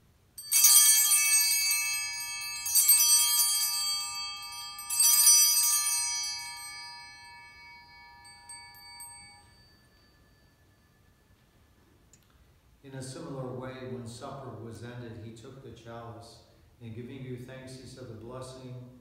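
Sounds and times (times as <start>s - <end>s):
altar bells ringing: 0.4s - 11.8s.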